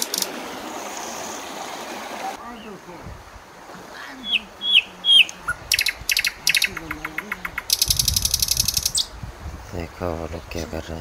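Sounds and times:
birds whistling and trilling: 4.2 - 9.2.

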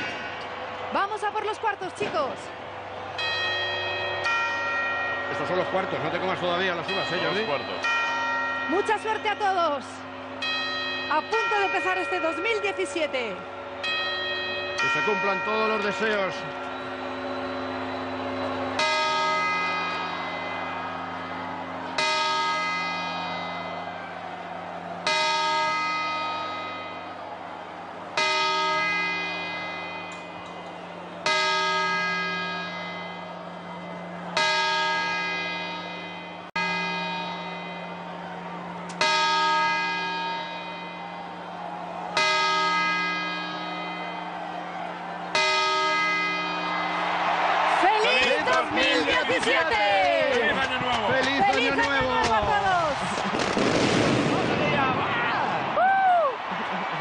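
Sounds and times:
clock bell striking: 3.2 - 27.2, 28.2 - 41.6, 42.2 - 50.4.

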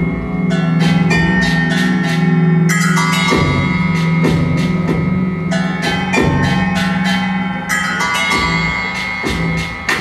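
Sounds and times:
ringing pitched percussion tones: 0.0 - 10.0.

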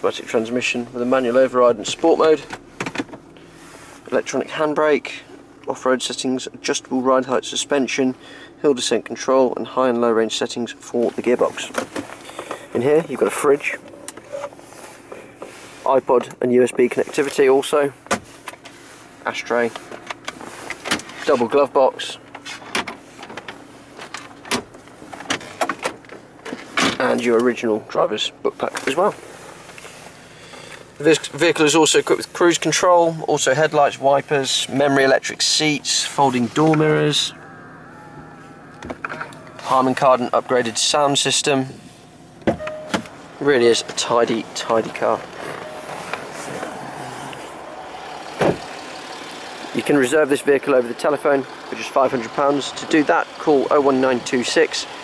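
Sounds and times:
diesel engine idling: 0.0 - 55.0
car door shutting: 1.8 - 3.6, 38.7 - 40.2, 42.3 - 49.0.

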